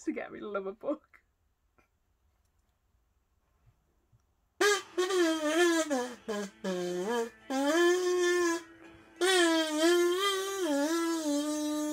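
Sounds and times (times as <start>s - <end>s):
person singing slow melody: 5.0s - 11.9s.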